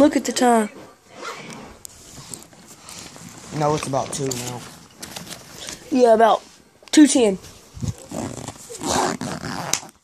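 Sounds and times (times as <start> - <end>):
fabric bag rustling and scraping: 0.8 - 6.7, 7.4 - 10.0.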